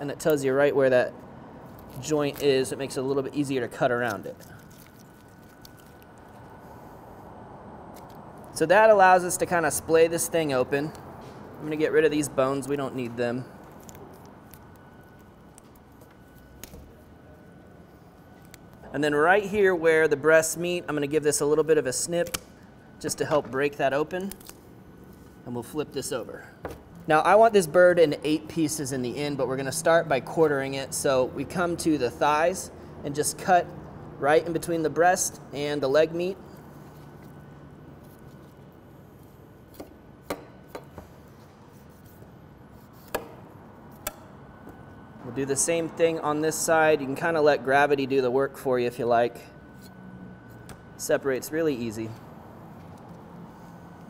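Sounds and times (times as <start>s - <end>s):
faint steady hum: 0.0s - 54.0s.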